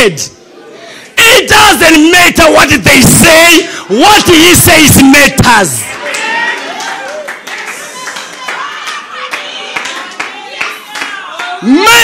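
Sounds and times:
congregation clapping: 0:05.6 - 0:12.0.

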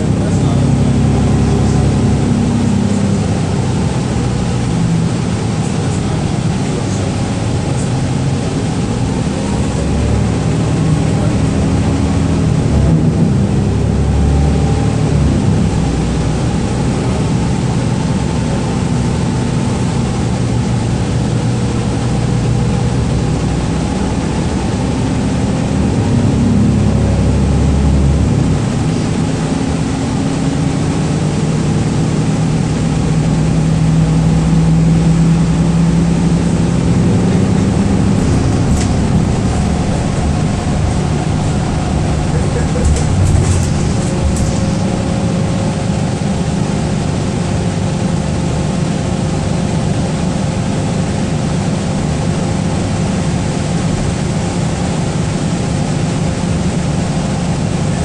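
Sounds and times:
bus engine drone: 0:00.0 - 0:58.0
road and tyre noise: 0:00.0 - 0:58.0.

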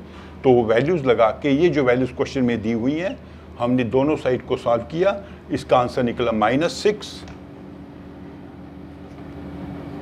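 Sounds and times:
low hum of held tones: 0:00.0 - 0:10.0.

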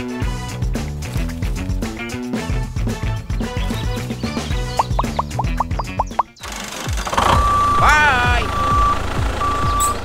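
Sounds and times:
background music with low beat: 0:00.6 - 0:06.4.

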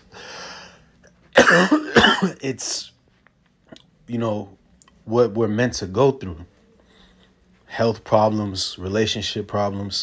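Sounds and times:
soft breath: 0:00.0 - 0:00.9, 0:06.6 - 0:07.6
man clearing throat: 0:01.4 - 0:02.7.

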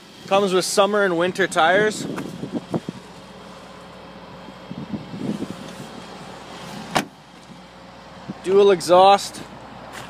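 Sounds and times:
outdoor background noise: 0:00.0 - 0:10.0
car door shutting: 0:06.7 - 0:07.6.

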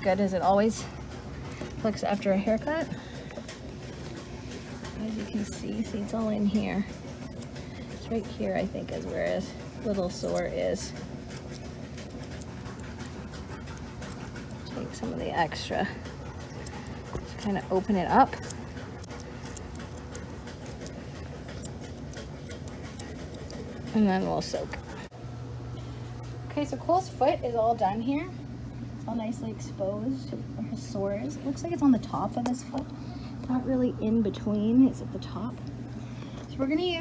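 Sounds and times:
low steady hum: 0:00.0 - 0:37.0
scissors snipping fur: 0:05.0 - 0:25.1.

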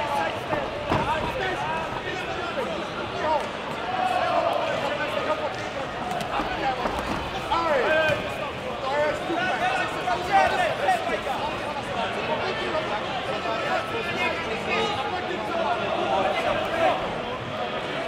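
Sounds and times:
crowd voices calling out: 0:00.0 - 0:18.0.

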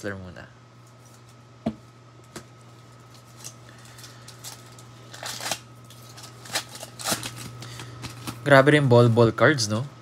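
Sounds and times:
foil wrapper crinkling and tearing: 0:02.7 - 0:09.2.

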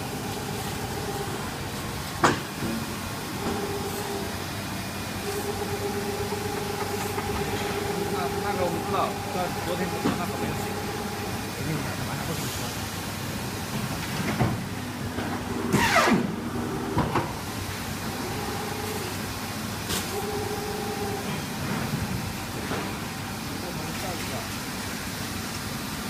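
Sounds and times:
steady hiss and hum: 0:00.0 - 0:20.4.

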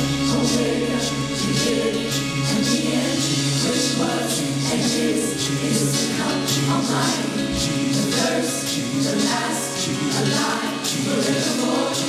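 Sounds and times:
instrumental accompaniment: 0:00.0 - 0:11.9
gospel choir singing: 0:00.0 - 0:12.0.

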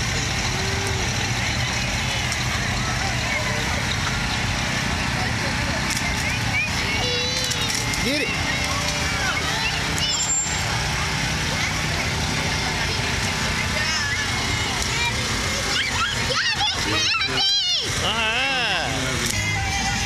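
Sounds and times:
vehicle engine rumbling: 0:00.0 - 0:20.0
high wavering voices calling out: 0:15.6 - 0:20.0.

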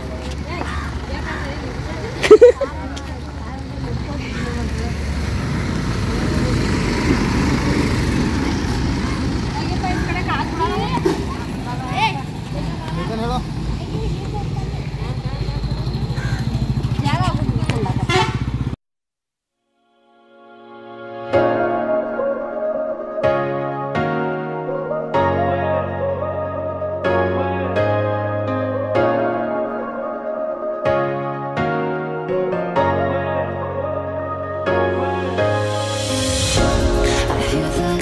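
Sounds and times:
people talking: 0:00.0 - 0:05.2, 0:08.1 - 0:18.3
low microphone rumble: 0:34.6 - 0:38.0
brief loud sound: 0:35.2 - 0:38.0.

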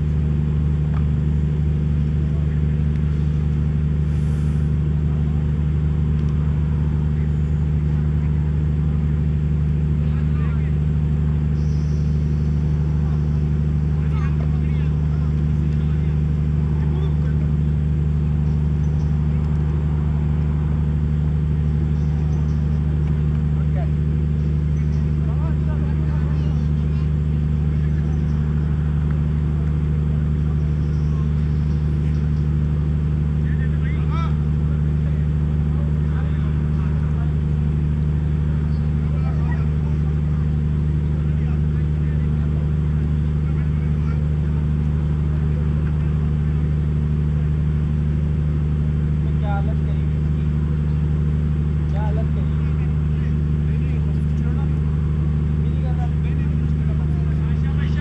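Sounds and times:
low mechanical drone: 0:00.0 - 0:58.0
faint distant voices: 0:06.4 - 0:46.9.

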